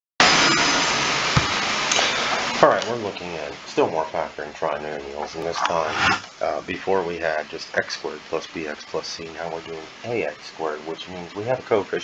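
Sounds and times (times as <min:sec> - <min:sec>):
steady background hiss: 0:01.0 - 0:12.0.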